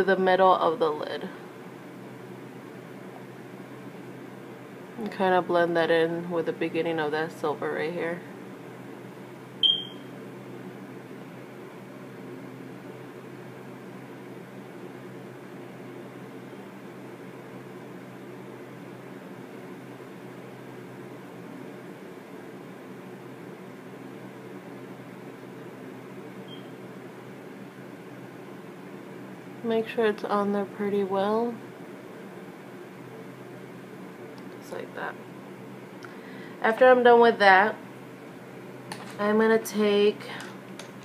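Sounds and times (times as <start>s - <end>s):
low room hum: 0.0s - 41.0s
high electronic beep: 9.6s - 10.0s.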